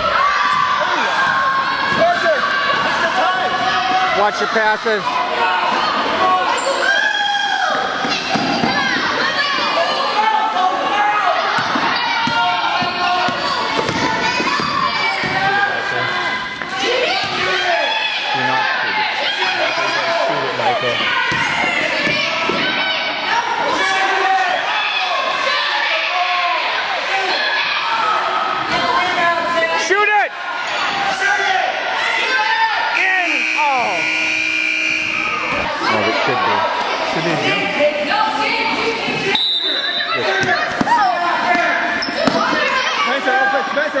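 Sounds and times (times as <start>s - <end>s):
voices and shouts echoing: 0.0s - 44.0s
buzzer sounding: 33.0s - 35.4s.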